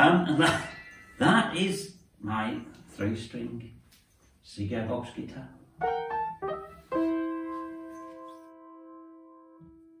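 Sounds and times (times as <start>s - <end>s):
piano-like keyboard phrase: 5.8s - 10.0s.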